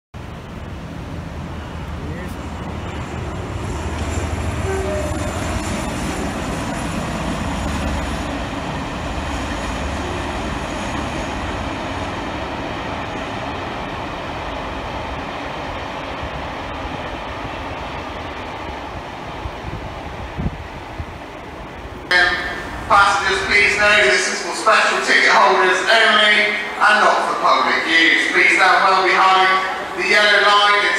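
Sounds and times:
river rushing: 0.2 - 19.6
diesel train passing: 0.2 - 30.9.

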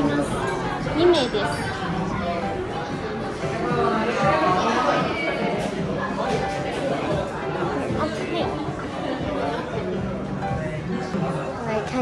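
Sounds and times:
background music: 0.0 - 12.0
diners chatting: 0.0 - 12.0.

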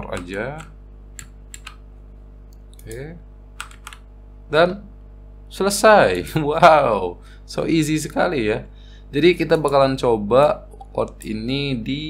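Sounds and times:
computer keyboard keystrokes: 0.0 - 1.8, 3.6 - 4.0
low electrical hum: 0.0 - 12.0.

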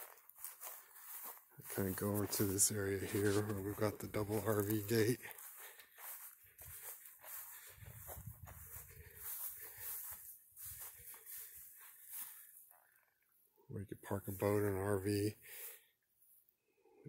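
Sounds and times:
footsteps on grass and gravel: 0.0 - 13.1, 14.0 - 15.8.

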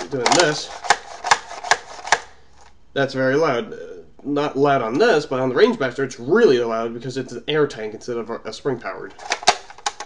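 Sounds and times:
toy dart rifle mechanism clicking: 0.2 - 2.3, 9.2 - 10.0.

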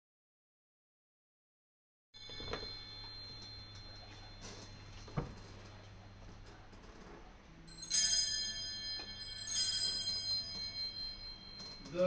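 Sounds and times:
altar bells ringing: 2.2 - 6.1, 7.6 - 12.0.

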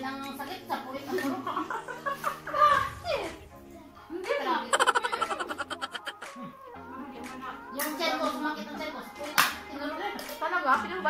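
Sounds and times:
women talking: 4.2 - 6.3.

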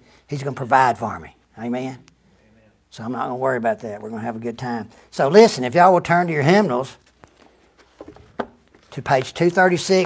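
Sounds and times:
person speaking: 0.3 - 7.2, 8.6 - 10.0.

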